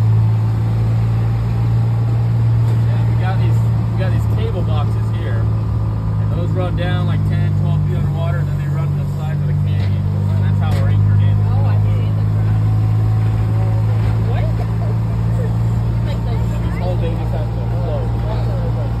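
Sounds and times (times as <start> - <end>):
small engine humming: 0.0 - 19.0.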